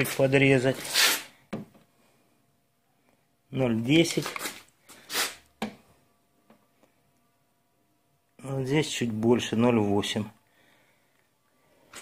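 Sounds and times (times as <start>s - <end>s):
person speaking: 0.0s - 1.1s, 3.5s - 4.7s.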